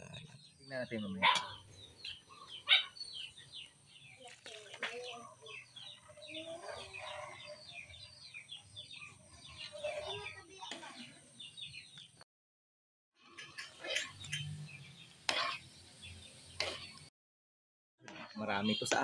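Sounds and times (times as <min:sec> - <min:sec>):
birds chirping: 0:00.0 - 0:12.2, 0:13.2 - 0:17.1, 0:18.2 - 0:19.0.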